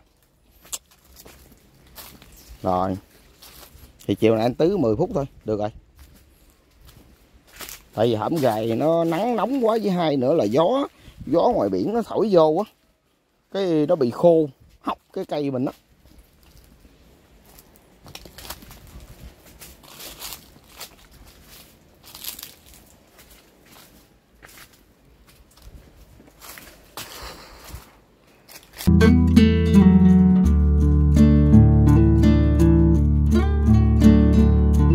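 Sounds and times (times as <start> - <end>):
footsteps crunching on dry leaves: 0.0 - 28.9
acoustic guitar music: 28.9 - 34.9.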